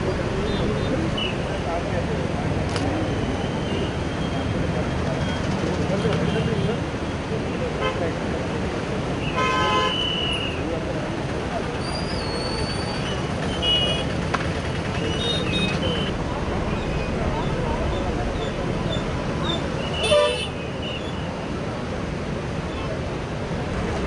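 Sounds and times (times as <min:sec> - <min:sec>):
steady traffic: 0:00.0 - 0:24.0
vehicle horn blast: 0:09.3 - 0:10.1, 0:20.0 - 0:20.7.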